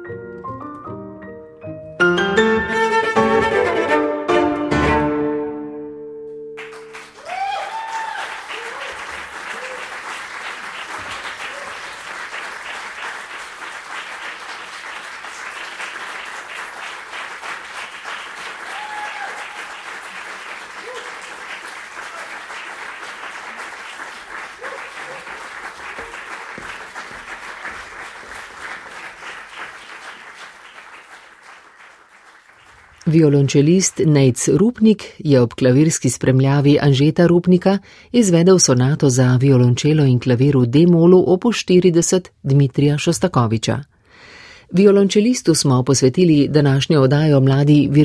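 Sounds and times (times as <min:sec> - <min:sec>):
cello and piano chord: 0:01.9 - 0:07.0
audience applauding: 0:06.6 - 0:34.2.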